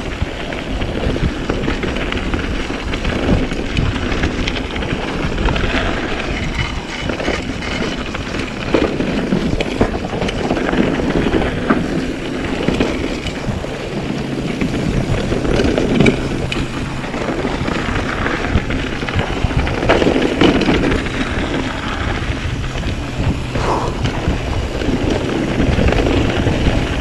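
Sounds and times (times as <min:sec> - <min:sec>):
bike rattling and knocking: 0:00.0 - 0:27.0
bike tyres rumbling on dirt: 0:00.0 - 0:27.0
wind buffeting microphone: 0:00.0 - 0:27.0.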